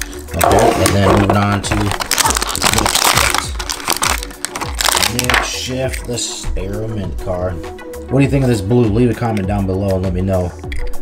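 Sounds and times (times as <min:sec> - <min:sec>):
plastic packaging crinkling: 0:00.0 - 0:05.6
music with low drum hits: 0:00.3 - 0:03.6, 0:05.0 - 0:11.0.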